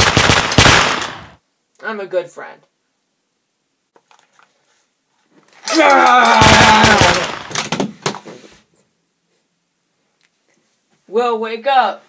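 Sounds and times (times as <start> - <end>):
loud drawn-out cry: 5.6 - 7.5.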